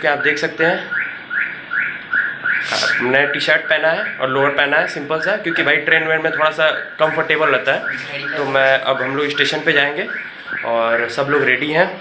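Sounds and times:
brief hiss: 2.6s - 3.0s.

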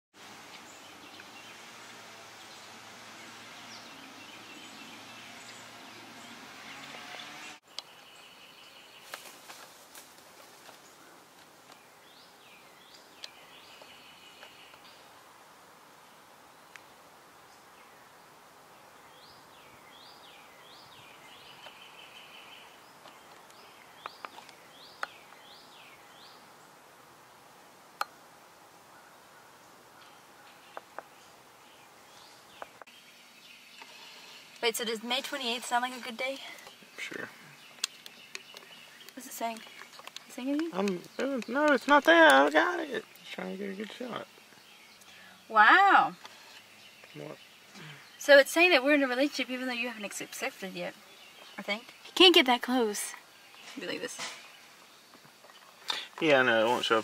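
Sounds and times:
faint outdoor background noise: 0.1s - 57.0s
songbirds singing: 0.2s - 57.0s.

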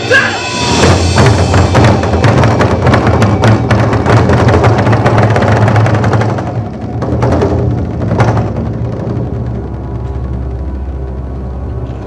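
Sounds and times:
low backing drone: 0.0s - 12.0s.

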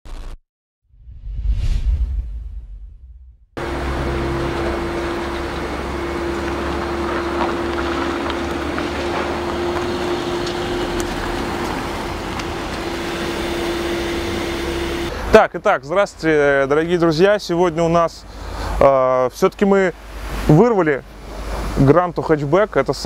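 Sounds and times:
vehicle rumble and hiss: 3.6s - 23.0s.

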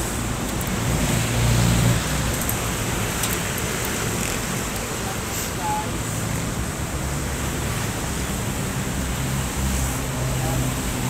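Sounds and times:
rumble and hiss: 0.0s - 11.0s.

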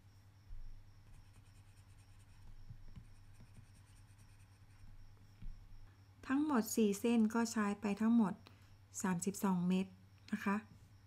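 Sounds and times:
soft thump: 5.4s - 5.7s.

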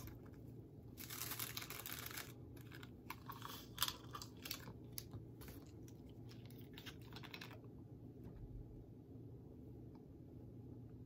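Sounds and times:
tablets popping through foil: 0.9s - 5.2s
blister packs crinkling: 0.9s - 7.6s.

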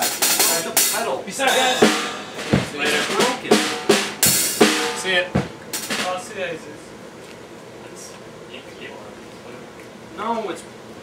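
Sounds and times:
bass drum hits: 1.5s - 6.2s
snare drum hits: 1.5s - 6.2s.

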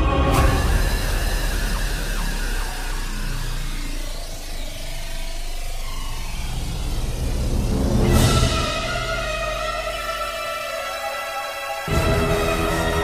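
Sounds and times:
low sustained drone: 0.0s - 13.0s
sliding siren-like pitches: 0.0s - 13.0s.

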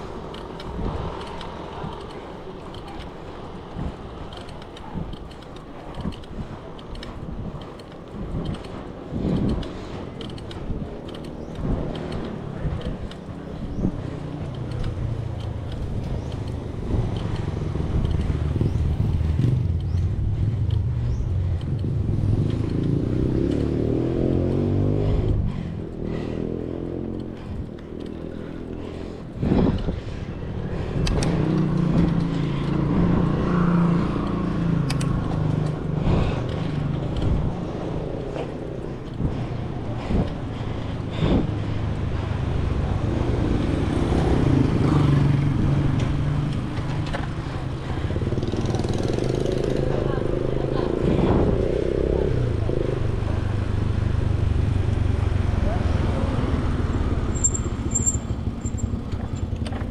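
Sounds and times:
bike tyres rolling on asphalt: 0.0s - 59.9s
motor vehicle passing: 0.0s - 59.9s
wind rushing over microphone: 0.0s - 59.9s.

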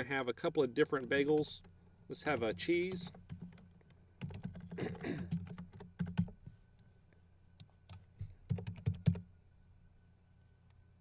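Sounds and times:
computer keyboard typing: 0.8s - 6.5s, 7.6s - 9.3s.

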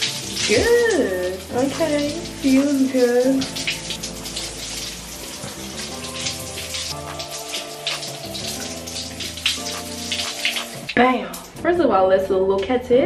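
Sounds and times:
shower spray splashing on hair: 0.0s - 11.6s
background music sustained chords: 0.0s - 13.0s.

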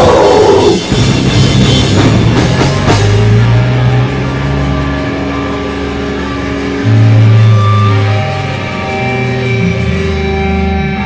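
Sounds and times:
bass guitar chords: 0.0s - 11.0s
distorted electric guitars: 0.0s - 11.0s.

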